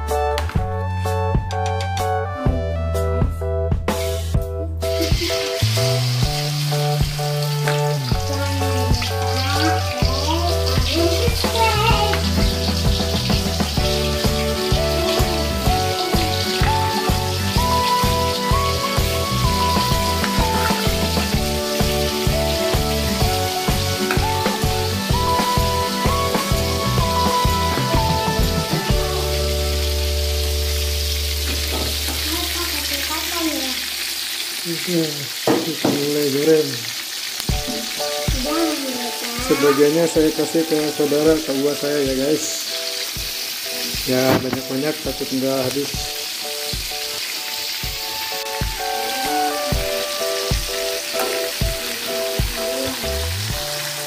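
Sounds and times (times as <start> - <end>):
background music with a beat: 0.0 - 30.5, 37.5 - 39.0, 42.1 - 45.3, 45.9 - 54.0
meat sizzling in hot oil: 3.9 - 54.0.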